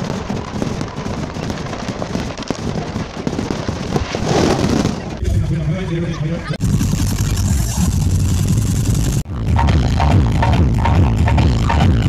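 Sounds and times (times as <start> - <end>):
fireworks crackling and banging: 0.0 - 5.3.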